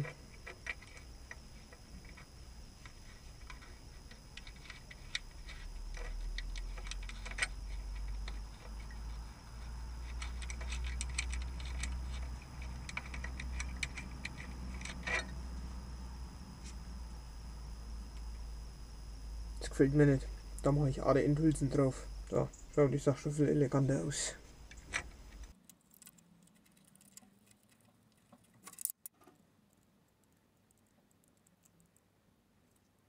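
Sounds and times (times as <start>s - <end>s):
low steady rumble: 0.0s - 25.6s.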